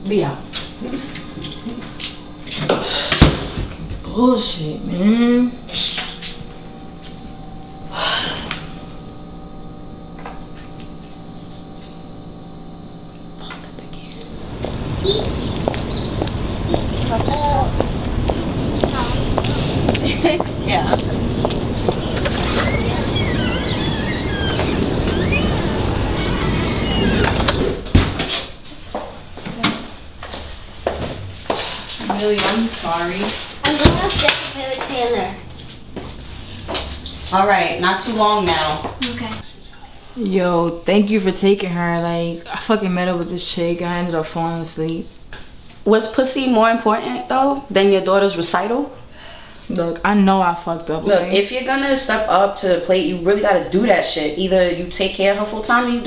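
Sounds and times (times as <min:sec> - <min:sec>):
woman speaking: 0:00.0 - 0:01.1, 0:04.0 - 0:05.8, 0:17.0 - 0:17.8, 0:18.8 - 0:21.2, 0:32.0 - 0:35.5, 0:37.2 - 0:39.5, 0:40.2 - 0:45.1, 0:45.8 - 0:49.0, 0:49.7 - 0:56.0
woman's sharp breath: 0:49.1 - 0:49.6.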